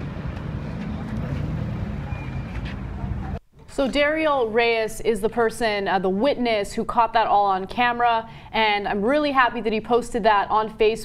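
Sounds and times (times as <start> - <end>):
vehicle engine humming: 0.0 - 3.4.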